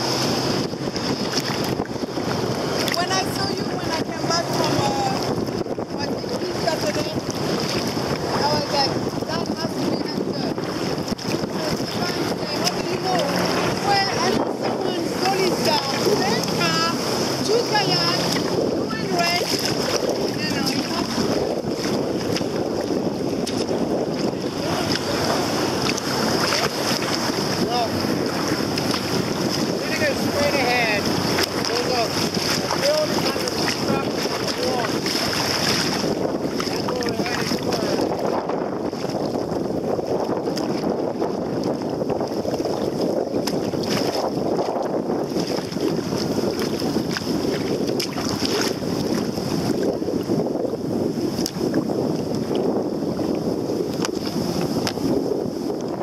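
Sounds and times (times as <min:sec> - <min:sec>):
water slapping against kayak hull: 0:00.0 - 0:56.0
wind buffeting microphone: 0:00.0 - 0:56.0.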